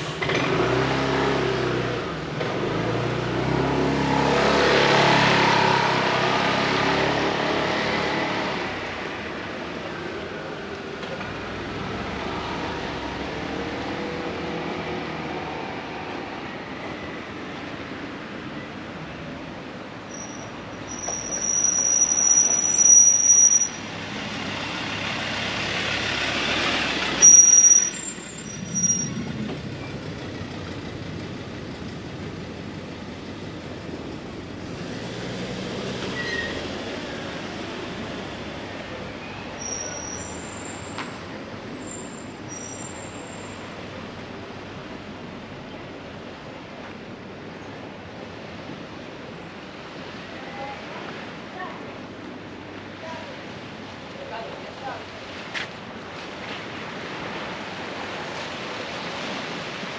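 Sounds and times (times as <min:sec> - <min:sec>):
vehicle engine passing: 0:00.0 - 0:09.0
high steady squeal: 0:20.1 - 0:23.9, 0:27.2 - 0:29.4.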